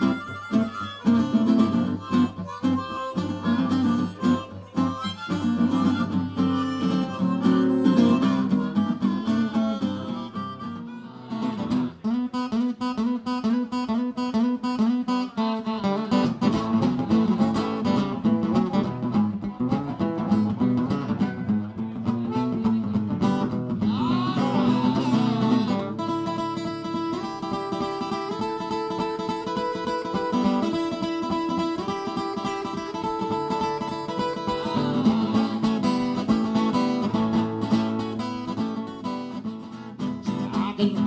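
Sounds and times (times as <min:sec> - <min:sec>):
harmonica solo: 0:00.0 - 0:12.1, 0:22.2 - 0:39.9
acoustic guitar strumming: 0:00.0 - 0:41.0.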